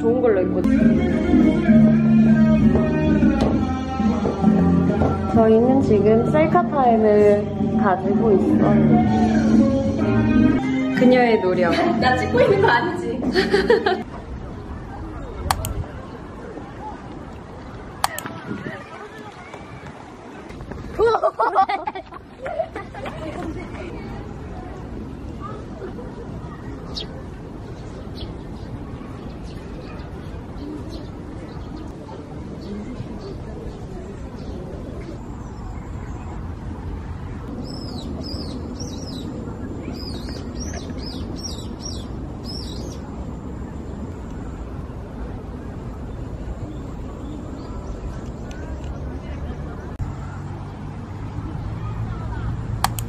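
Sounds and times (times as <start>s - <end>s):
outdoor background noise: 0.0s - 53.0s.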